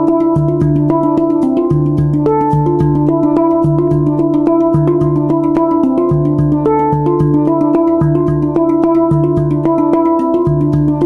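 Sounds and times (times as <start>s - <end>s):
handpan melody: 0.0s - 11.0s.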